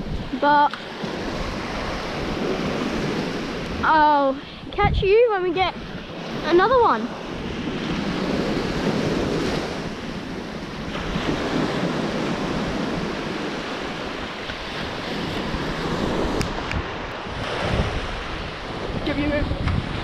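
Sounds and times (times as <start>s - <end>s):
small waves washing on sand: 0.0s - 20.0s
wind buffeting microphone: 0.0s - 20.0s.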